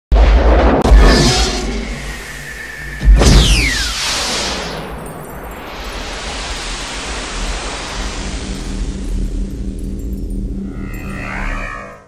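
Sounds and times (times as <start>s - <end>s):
deep rumble: 0.1s - 12.0s
synthesized whoosh-like hiss: 1.0s - 12.0s.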